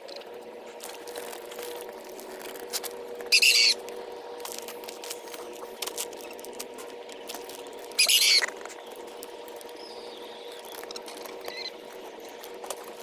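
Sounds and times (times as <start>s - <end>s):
bird screeching: 3.3s - 3.8s, 7.9s - 8.5s, 9.8s - 11.9s
faint high bird calls: 3.3s - 3.8s, 8.0s - 8.6s, 9.6s - 12.4s.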